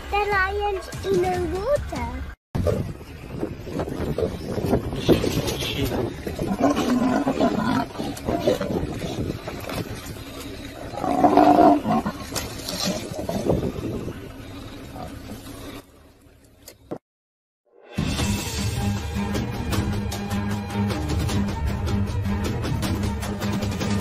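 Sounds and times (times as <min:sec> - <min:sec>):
lion growling: 0:05.0 - 0:15.8.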